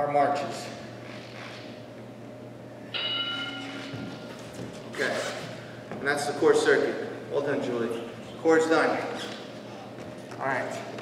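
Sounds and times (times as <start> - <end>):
low hum: 0.8 - 5.9
timer bell chime: 2.9 - 3.9.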